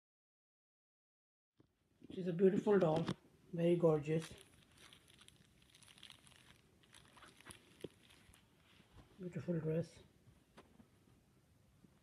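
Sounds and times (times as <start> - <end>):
doll clothes rustling: 4.0 - 9.3.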